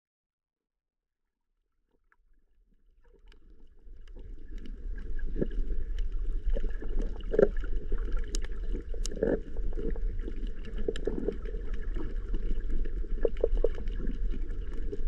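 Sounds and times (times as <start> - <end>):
faint underwater clicks: 1.9 - 15.0
underwater rumble of moving water: 2.1 - 15.0.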